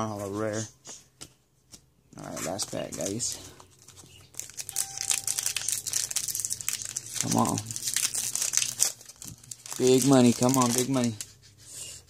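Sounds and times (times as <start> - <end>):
foil wrapper crinkling: 2.7 - 11.3.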